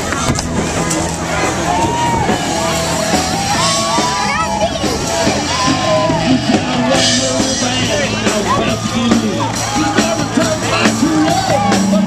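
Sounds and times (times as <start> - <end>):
crowd voices and calls: 0.0 - 12.0
music: 0.0 - 12.0.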